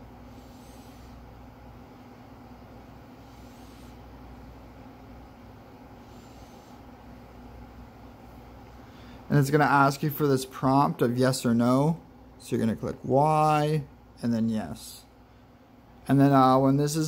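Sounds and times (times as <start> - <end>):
room hum and hiss: 0.0 - 17.0.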